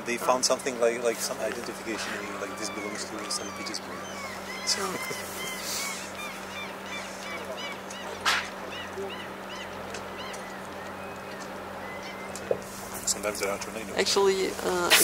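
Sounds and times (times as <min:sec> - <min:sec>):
water birds calling: 0:00.0 - 0:15.0
dolphin blowing: 0:01.8 - 0:10.3.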